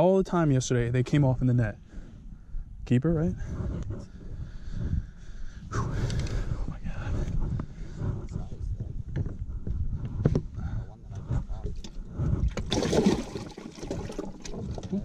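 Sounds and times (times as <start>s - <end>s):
low rumble: 0.8s - 12.8s.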